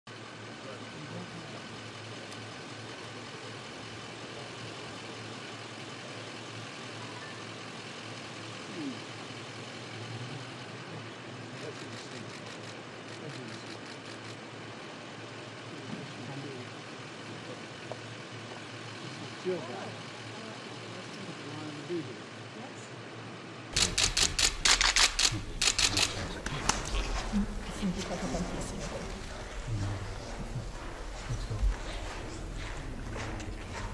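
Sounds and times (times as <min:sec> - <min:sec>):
murmur of voices: 0:15.5 - 0:33.9
camera shutters clicking rapidly: 0:23.8 - 0:27.3
car engines idling: 0:23.8 - 0:33.9.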